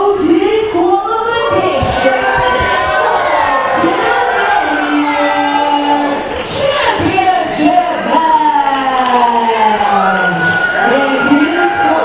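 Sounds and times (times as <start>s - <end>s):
announcer's amplified voice echoing: 0.0s - 12.0s
crowd noise: 0.0s - 12.0s.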